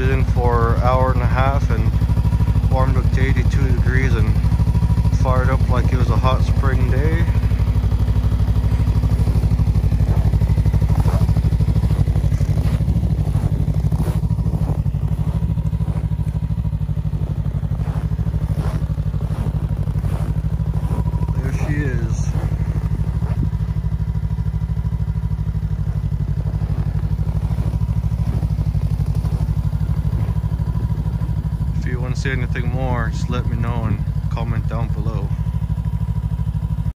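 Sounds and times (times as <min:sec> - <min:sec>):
snowmobile engine idling: 0:00.0 - 0:37.0.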